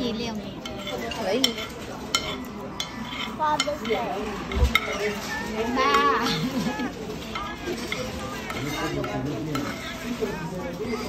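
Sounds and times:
diners talking: 0:00.0 - 0:11.0
utensils clinking on plates: 0:00.0 - 0:11.0.

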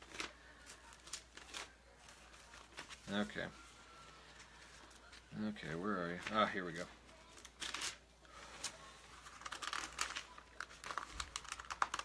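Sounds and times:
handling clicks and crinkles: 0:06.1 - 0:12.0.

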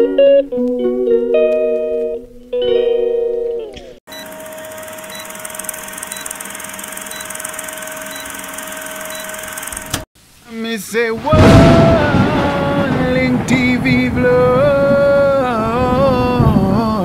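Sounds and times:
film countdown hiss with held tone: 0:04.1 - 0:09.8.

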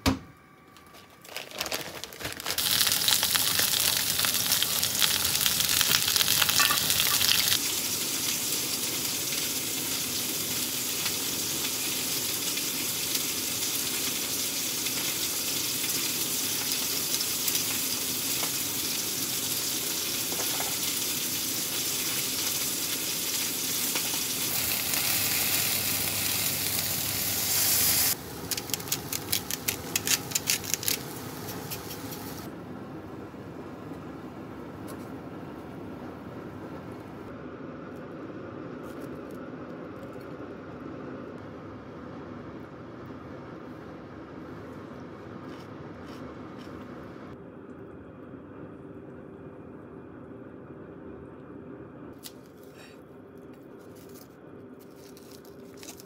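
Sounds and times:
oil popping and crackling: 0:01.2 - 0:32.5
fish sizzling in hot oil: 0:02.5 - 0:32.5.

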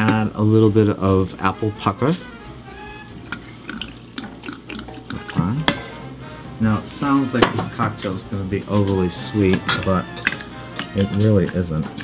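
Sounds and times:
liquid trickling into a glass: 0:03.2 - 0:05.4.

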